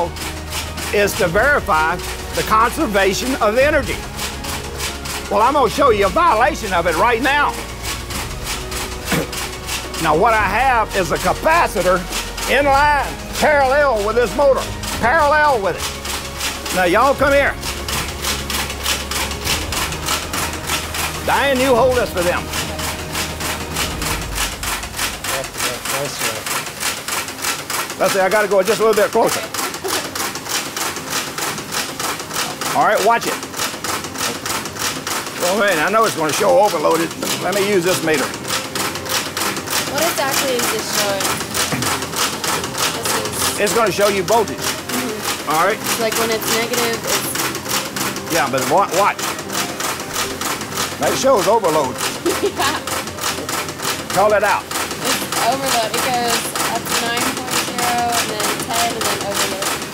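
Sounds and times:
motor clicking steadily: 0:00.0 - 0:59.9.

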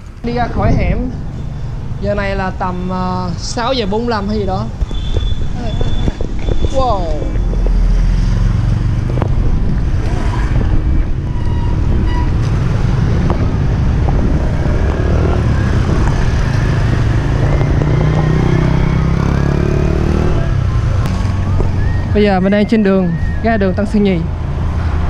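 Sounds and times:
passing motorbikes and cars: 0:00.0 - 0:25.0.

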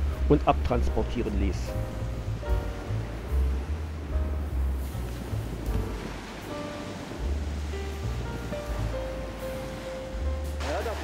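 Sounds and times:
sustained background music: 0:00.0 - 0:11.0
wind rumble: 0:00.0 - 0:11.0
small waves breaking: 0:00.2 - 0:11.0.

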